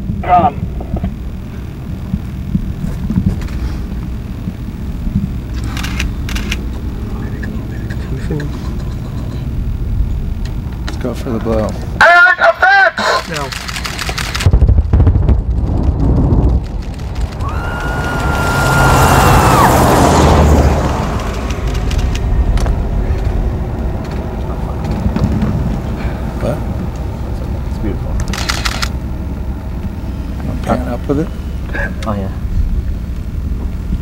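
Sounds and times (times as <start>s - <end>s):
fire burning: 0.0s - 34.0s
explosion blast with deep rumble: 14.4s - 28.2s.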